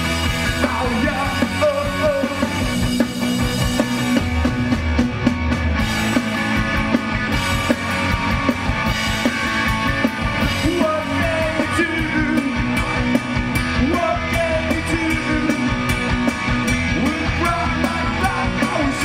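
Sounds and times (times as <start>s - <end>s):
distorted electric guitars: 0.0s - 19.0s
drum kit: 0.0s - 19.0s
person singing: 10.6s - 12.7s, 13.8s - 15.7s, 17.0s - 19.0s.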